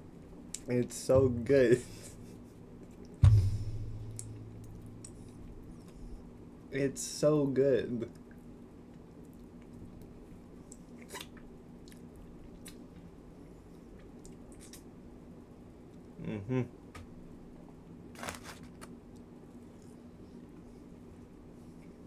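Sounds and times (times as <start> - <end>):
steady low hum: 0.0 - 22.0
person speaking: 0.7 - 2.2
person chewing: 13.9 - 14.9
wet mouth clicks: 14.2 - 14.9.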